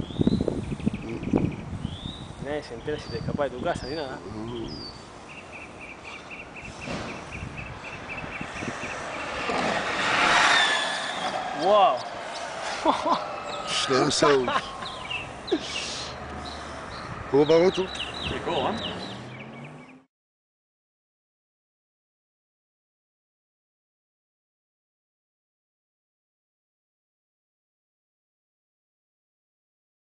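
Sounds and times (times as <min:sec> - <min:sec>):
electric scooter passing: 0:05.1 - 0:20.1.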